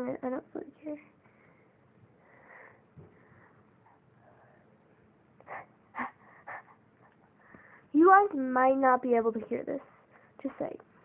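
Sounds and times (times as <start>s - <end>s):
person breathing close to microphone: 1.2s - 4.7s, 7.4s - 7.9s.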